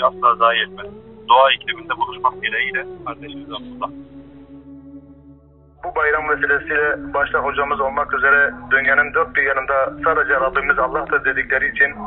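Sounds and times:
man speaking: 0:00.0 - 0:04.0, 0:05.8 - 0:12.0.

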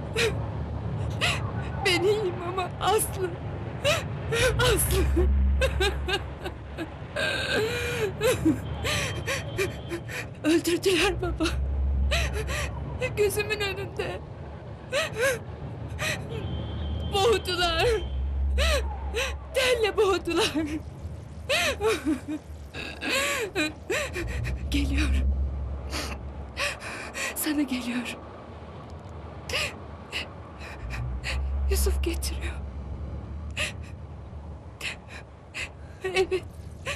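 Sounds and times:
woman crying: 0:01.2 - 0:14.2, 0:14.9 - 0:15.4, 0:18.6 - 0:20.8, 0:21.5 - 0:25.2, 0:25.9 - 0:27.5, 0:33.6 - 0:33.9, 0:34.8 - 0:36.9
woman sobbing and gasping: 0:03.8 - 0:13.4, 0:14.9 - 0:16.4, 0:18.6 - 0:20.8, 0:21.5 - 0:25.2, 0:25.9 - 0:27.5, 0:33.6 - 0:33.9, 0:34.8 - 0:36.9.

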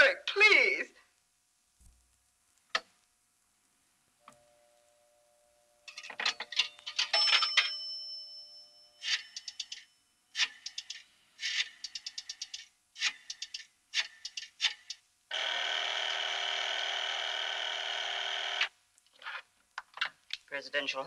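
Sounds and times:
telephone ringing: 0:06.9 - 0:09.9.

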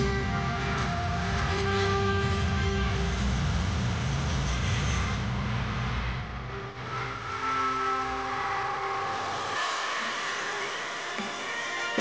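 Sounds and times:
deep rumbling swell: 0:00.0 - 0:11.2
long held tones: 0:06.5 - 0:12.0.

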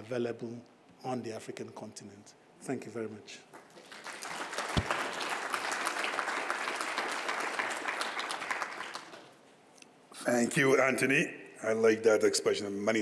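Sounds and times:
audience applauding: 0:03.6 - 0:09.4.

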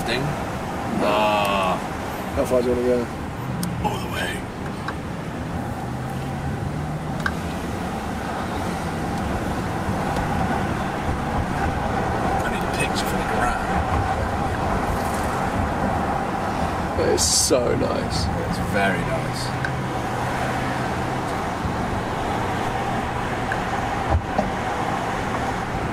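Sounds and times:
car engine and road noise: 0:00.0 - 0:25.9.

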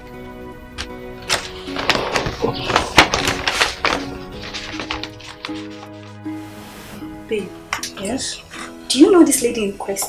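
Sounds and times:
film score with held notes: 0:00.0 - 0:10.0
paper crackling rustles: 0:01.2 - 0:06.2.

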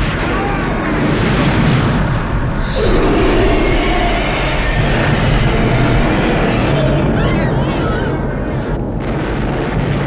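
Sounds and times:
huge explosion rumble: 0:00.0 - 0:10.0.

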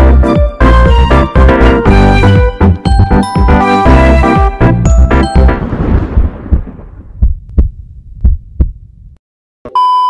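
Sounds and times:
music chord: 0:00.3 - 0:05.6
deep heartbeat-like thumps: 0:02.9 - 0:09.2
low rumble: 0:04.8 - 0:09.2.

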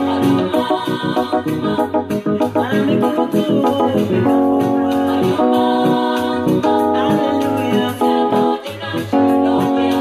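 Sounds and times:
electronic keyboard gospel chords: 0:00.0 - 0:10.0.

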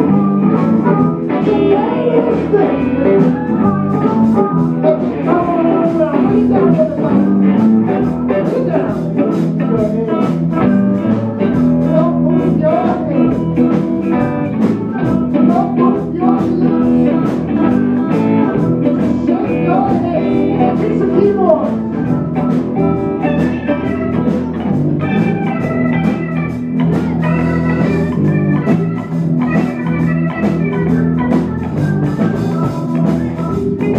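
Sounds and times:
amplified harmonica: 0:00.0 - 0:33.9
drums: 0:00.0 - 0:33.9
electric bass: 0:00.0 - 0:33.9
electric guitars: 0:00.0 - 0:33.9.

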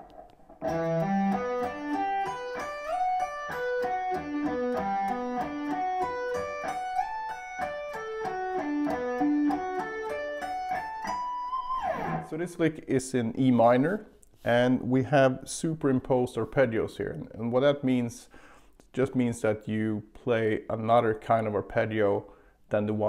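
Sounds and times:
electric guitar arpeggio: 0:00.0 - 0:12.3.

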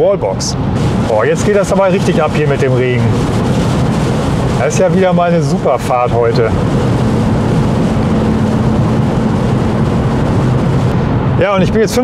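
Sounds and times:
tyres on wet road: 0:00.0 - 0:11.4
steady low hum: 0:00.0 - 0:12.0
wind: 0:00.0 - 0:12.0
rain: 0:00.8 - 0:10.9.

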